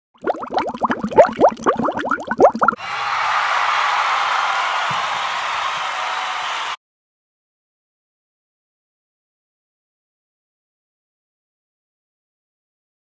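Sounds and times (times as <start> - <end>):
rising plops: 0.2 - 2.8.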